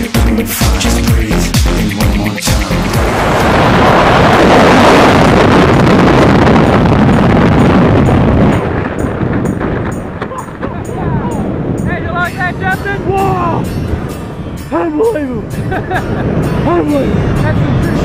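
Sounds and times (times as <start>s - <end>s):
wind rushing over microphone: 1.3s - 18.0s
voices: 10.3s - 13.7s, 16.6s - 18.0s.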